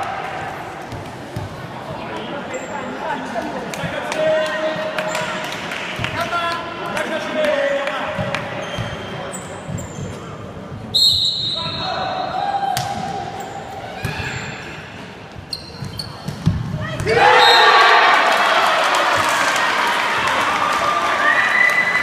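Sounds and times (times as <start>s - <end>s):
voices in echoing hall: 0.0s - 22.0s
whistle blast: 10.9s - 12.0s
crowd shouting and cheering: 16.8s - 22.0s.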